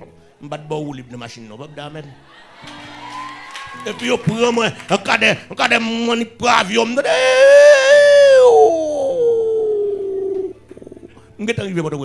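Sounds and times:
man's drawn-out cry: 7.0s - 10.4s.

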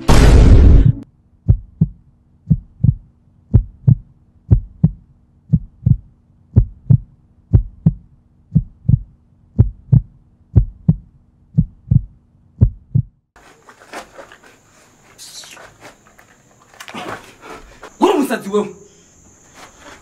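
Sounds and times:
heartbeat double thumps: 0.8s - 13.2s.

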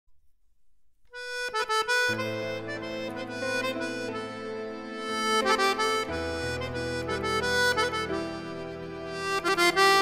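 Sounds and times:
free-reed instrument playing: 1.1s - 10.0s.

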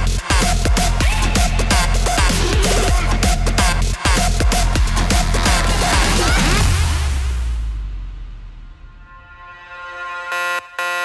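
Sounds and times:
edm dance music: 0.0s - 7.2s
synth stabs with alarm-like ring: 8.8s - 11.0s.

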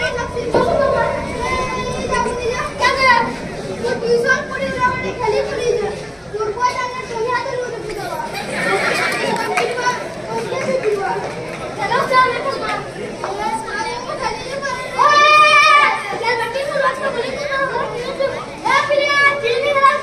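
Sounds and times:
children talking and calling out: 0.0s - 20.0s
crowd chatter: 0.0s - 20.0s.

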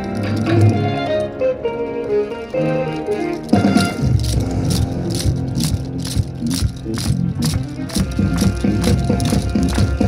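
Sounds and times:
wooden hand clappers clacking: 0.0s - 1.4s, 2.0s - 10.0s
dance music over loudspeakers: 3.8s - 10.0s.

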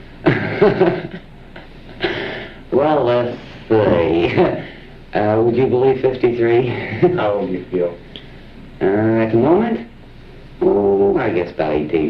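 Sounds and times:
person laughing: 3.8s - 4.7s.

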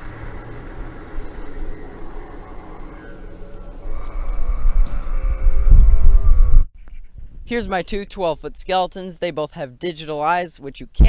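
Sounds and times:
droning tone: 0.0s - 7.3s
low rumble: 0.0s - 7.7s.

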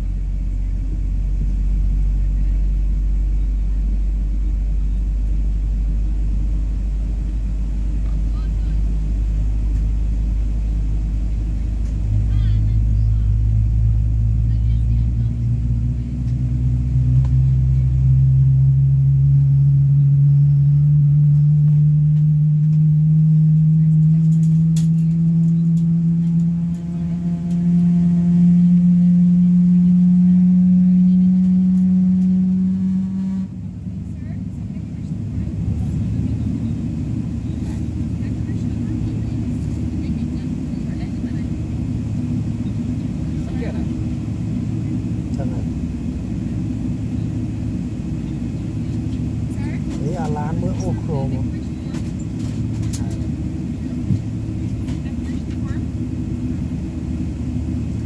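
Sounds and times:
low cabin rumble: 0.0s - 58.0s.

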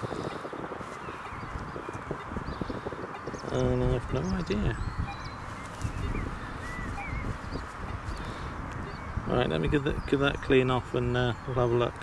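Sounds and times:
bird chirps: 0.0s - 12.0s.

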